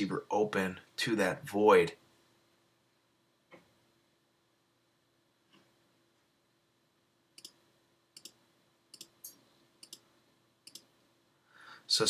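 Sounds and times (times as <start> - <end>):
faint steady hum: 0.0 - 12.0
computer mouse clicks: 7.4 - 7.6, 8.2 - 10.0, 10.6 - 10.9.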